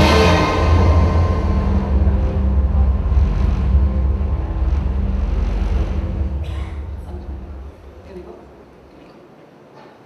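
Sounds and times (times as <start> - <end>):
deep bass rumble: 0.0 - 8.9.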